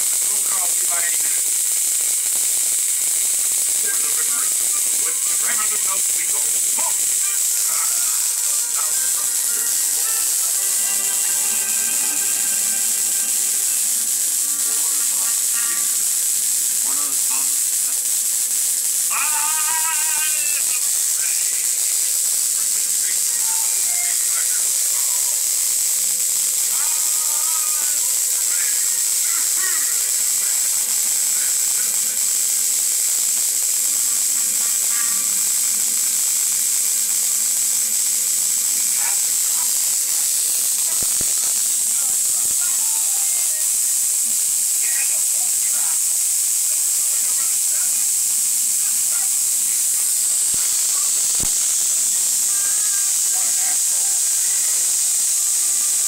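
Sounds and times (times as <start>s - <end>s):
electric arcs hissing: 0.0s - 56.0s.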